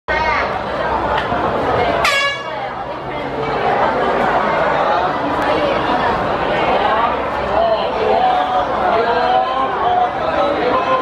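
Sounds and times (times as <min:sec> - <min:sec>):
crowd chatter: 0:00.1 - 0:11.0
starter's horn blast: 0:02.0 - 0:02.6.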